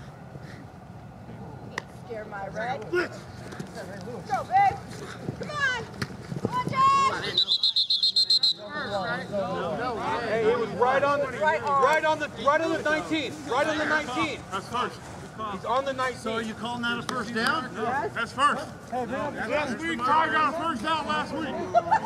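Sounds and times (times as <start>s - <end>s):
warbling referee's whistle: 7.2s - 8.7s.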